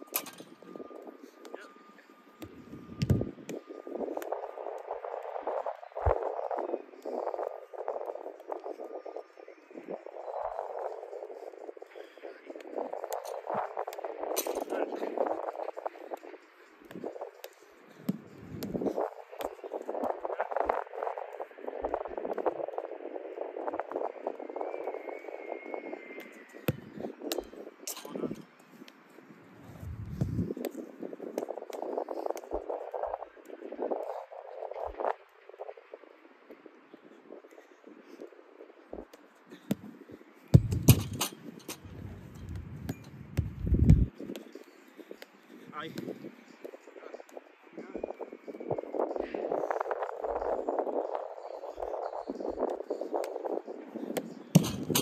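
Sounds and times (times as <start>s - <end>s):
rushing background noise: 0.0s - 36.9s
balls kicked on artificial turf: 2.4s - 4.3s, 16.1s - 20.1s, 29.6s - 32.4s, 39.1s - 44.5s, 45.2s - 47.4s, 54.1s - 55.0s.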